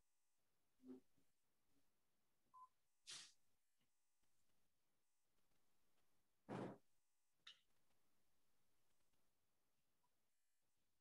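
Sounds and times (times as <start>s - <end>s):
faint electronic beep: 2.5s - 2.8s.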